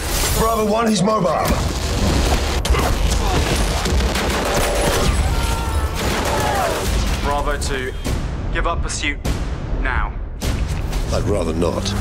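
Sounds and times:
rapid gunfire: 1.6s - 5.2s, 5.9s - 7.4s.

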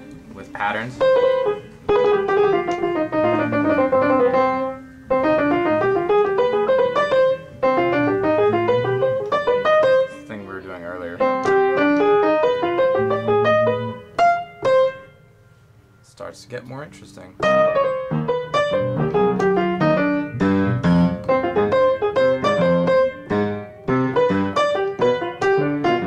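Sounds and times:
piano scale runs and chords: 0.5s - 15.3s, 17.4s - 26.0s.

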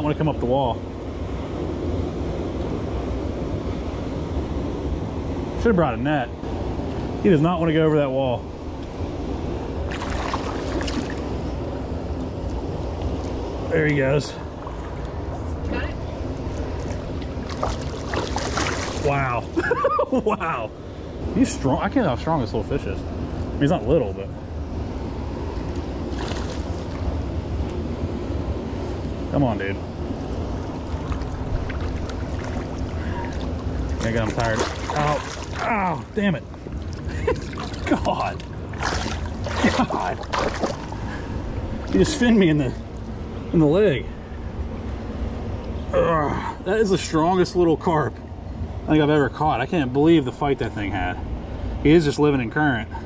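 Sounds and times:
water rushing at a spillway: 9.8s - 11.4s, 16.6s - 20.6s, 30.7s - 41.1s
wind rumbling on microphone: 24.3s - 43.4s.

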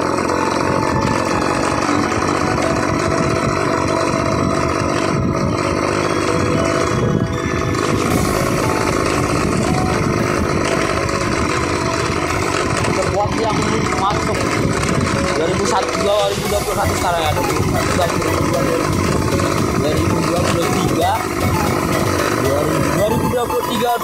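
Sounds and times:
motorcycle engine running: 0.0s - 24.0s
tyres on gravel track: 0.0s - 24.0s
wind noise: 0.7s - 23.6s.

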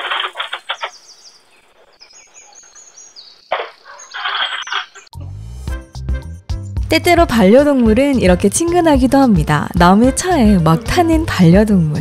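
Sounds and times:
birds chirping: 0.0s - 5.1s.

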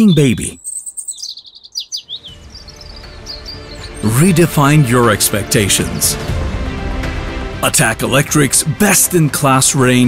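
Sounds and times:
small birds chirping: 0.0s - 6.4s
low music: 2.0s - 10.0s.

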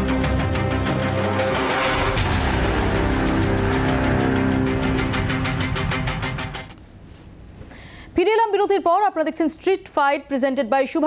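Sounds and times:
news theme music: 0.0s - 6.7s.

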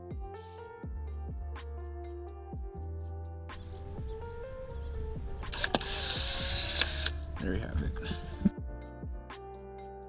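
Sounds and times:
camera shutter click: 5.4s - 7.2s
camera motor whirring: 5.4s - 7.3s.

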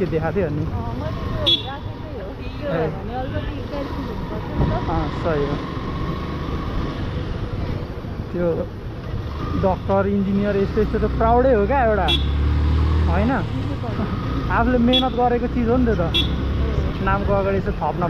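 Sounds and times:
motorcycle engine and road rumble: 0.0s - 18.0s
voices talking: 0.0s - 18.0s.

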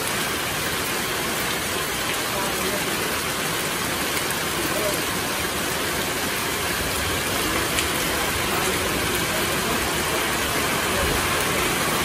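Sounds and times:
heavy rain on foliage and roofs: 0.0s - 12.0s.

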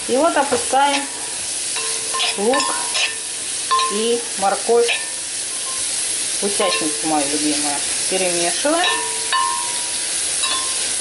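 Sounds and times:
vegetables sizzling in oil: 0.0s - 11.0s
spatula stirring in pan: 0.4s - 11.0s.

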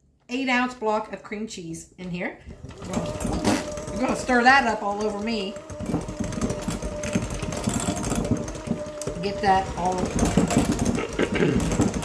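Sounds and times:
mixer beaters clattering: 2.4s - 12.0s
electric hand mixer whine: 2.5s - 12.0s.

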